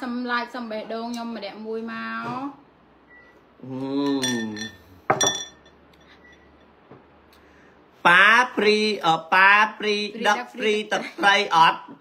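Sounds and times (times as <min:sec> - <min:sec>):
hummed vocal sound: 0:03.6 - 0:04.6
glass clinking: 0:04.0 - 0:06.5.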